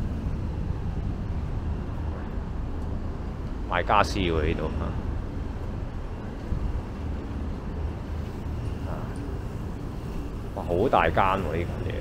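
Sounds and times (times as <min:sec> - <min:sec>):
road traffic: 0:00.0 - 0:12.0
wind rumbling on microphone: 0:00.0 - 0:12.0.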